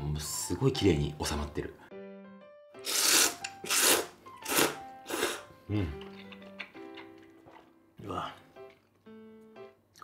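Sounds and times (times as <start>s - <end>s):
person slurping noodles: 2.8s - 6.2s.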